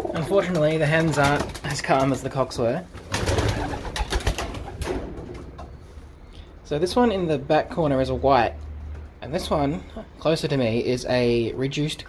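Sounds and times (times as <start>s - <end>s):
pigeons shuffling: 0.0s - 6.1s
pigeon wing flaps: 0.4s - 2.1s, 3.0s - 5.5s.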